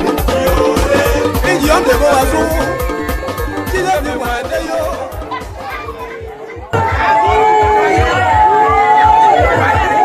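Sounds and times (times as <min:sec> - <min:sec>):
music with long held notes: 0:00.0 - 0:07.1
children and crowd voices: 0:00.0 - 0:10.0
dance music with bass beat: 0:00.0 - 0:10.0.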